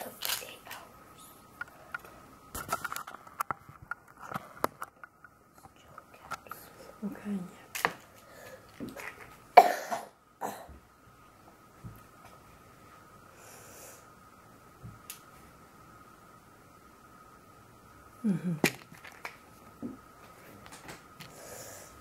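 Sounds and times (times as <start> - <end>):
small clicks and handling: 1.6 - 6.6
soft vocal sounds: 18.2 - 18.7.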